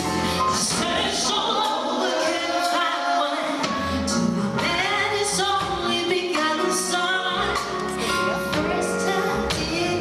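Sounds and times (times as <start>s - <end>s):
women singing in harmony: 0.0s - 10.0s.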